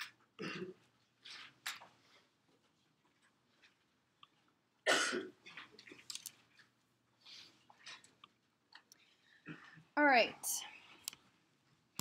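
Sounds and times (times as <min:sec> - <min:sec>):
person coughing: 0:00.4 - 0:00.8, 0:04.9 - 0:05.4.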